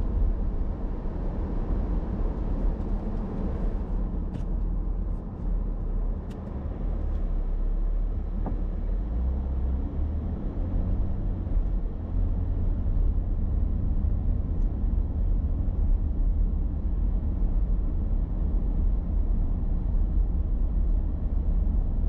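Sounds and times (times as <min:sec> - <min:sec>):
car engine and road rumble: 0:00.0 - 0:22.0.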